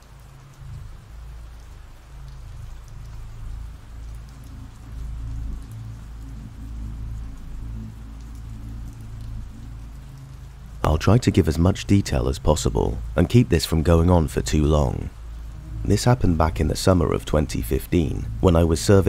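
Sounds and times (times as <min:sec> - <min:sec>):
rain falling: 0:00.0 - 0:19.0
low rumble: 0:00.4 - 0:19.0.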